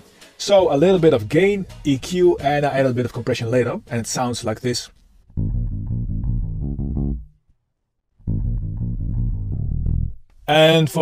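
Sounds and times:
electric bass guitar riff: 5.3 - 7.4, 8.2 - 10.2.

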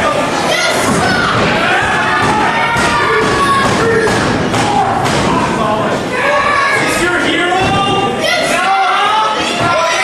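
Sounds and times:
crowd shouting and chattering: 0.0 - 10.0.

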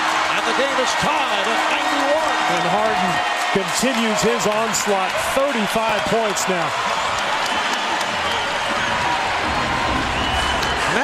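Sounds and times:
crowd cheering and applauding: 0.0 - 11.0.

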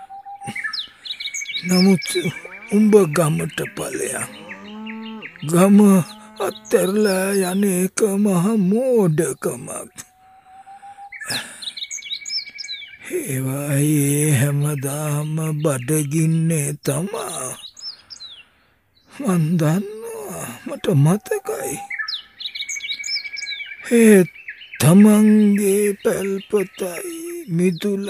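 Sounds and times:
birds chirping quick high calls: 0.0 - 7.8, 9.2 - 13.1, 17.3 - 28.0
steady high bird trill: 0.0 - 28.0.

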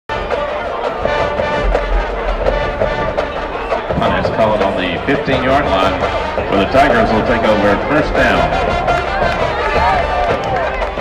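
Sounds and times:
marching band brass and drums: 0.1 - 11.0.

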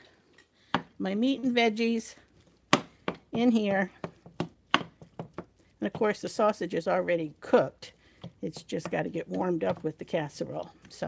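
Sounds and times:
wooden spoon knocking on skillet: 2.7 - 7.1, 8.2 - 11.0.

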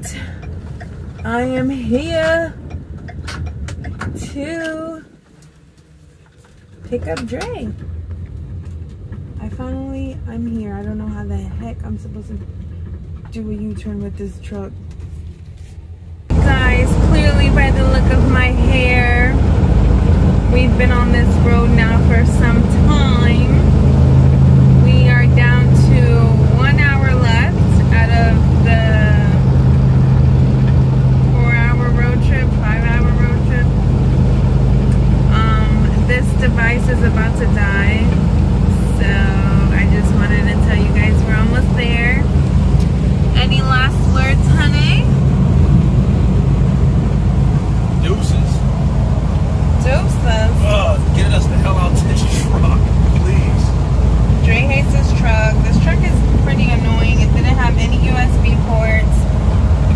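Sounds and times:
truck engine and road noise: 0.0 - 59.9
person talking: 49.8 - 53.7.

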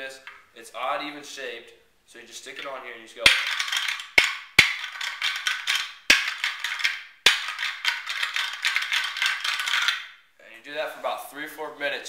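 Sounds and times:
rapid clattering of plastic discs: 3.3 - 10.0
plastic rattling call cracks: 3.3 - 10.2.

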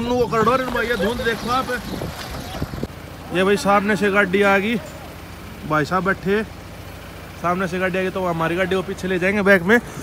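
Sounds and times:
men talking: 0.0 - 6.6
low vehicle rumble: 0.0 - 10.0.

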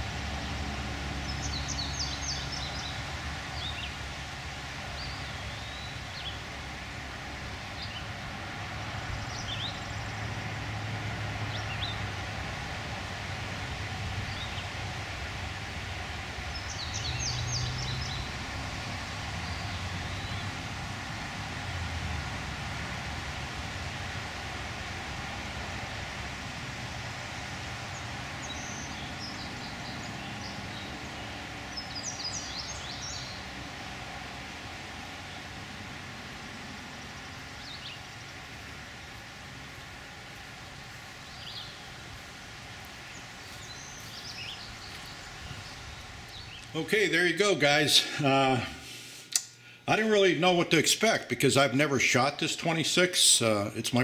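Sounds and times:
outdoor low hum: 0.0 - 53.1.

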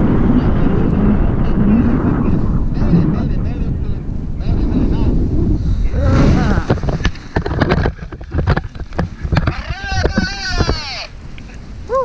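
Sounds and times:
wind rumbling on microphone: 0.0 - 12.0.

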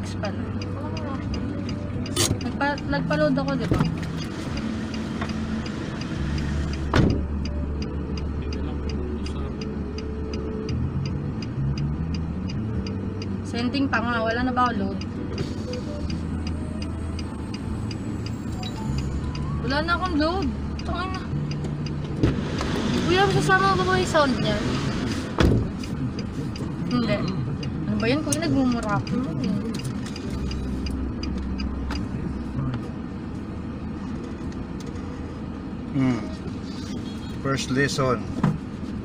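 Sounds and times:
car indicator ticking: 0.0 - 35.9
low engine hum: 0.0 - 39.0.

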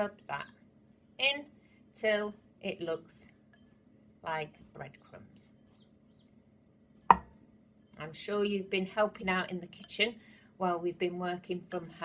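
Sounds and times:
knock on glass bowl ringing: 7.1 - 7.3.

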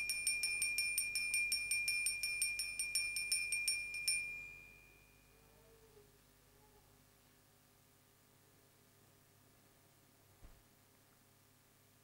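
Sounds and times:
altar bell rung rapidly: 0.0 - 5.3.

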